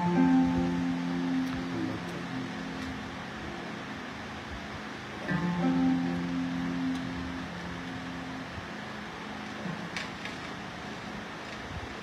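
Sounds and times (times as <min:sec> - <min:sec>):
plucked kora notes: 0:00.0 - 0:03.9, 0:05.3 - 0:08.6
steady background hiss: 0:00.0 - 0:12.0.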